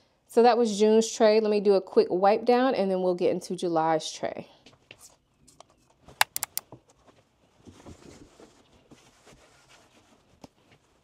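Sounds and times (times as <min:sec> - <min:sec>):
spray bottle squirting: 0:06.2 - 0:06.6.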